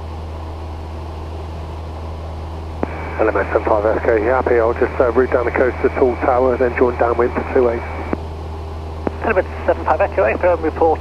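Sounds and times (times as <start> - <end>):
propeller plane engine droning: 0.0 - 11.0.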